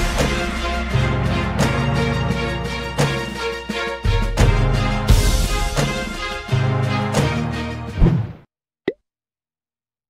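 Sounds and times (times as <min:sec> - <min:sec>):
background music with beat: 0:00.0 - 0:07.9.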